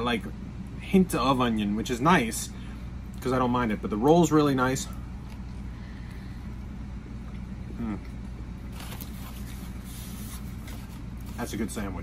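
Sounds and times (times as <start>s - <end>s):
low background hum: 0.0s - 12.0s
man chewing food: 4.9s - 11.3s
man humming mm: 7.7s - 8.2s.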